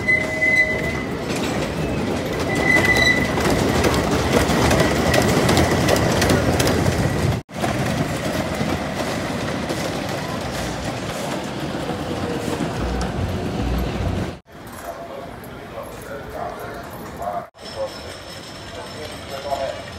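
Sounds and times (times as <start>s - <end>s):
high squeals: 0.0s - 3.7s
roller coaster wheels rumbling: 0.0s - 14.8s.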